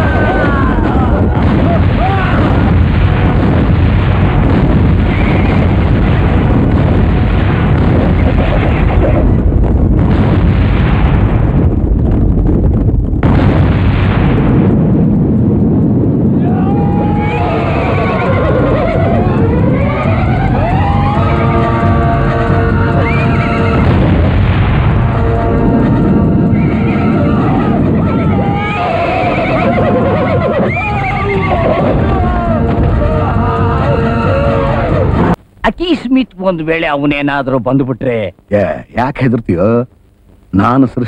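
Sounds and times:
people shouting: 0.0 - 2.6, 16.4 - 23.9, 25.3 - 35.4
explosions: 0.0 - 35.4
horses neighing: 17.1 - 23.8, 26.7 - 35.4.

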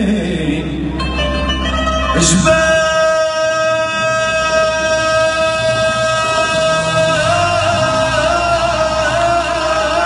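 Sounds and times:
man singing through sound system: 0.0 - 10.0.

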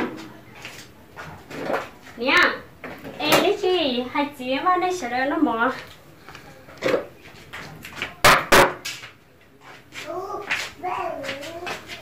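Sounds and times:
sharp knocks: 8.2 - 8.9.

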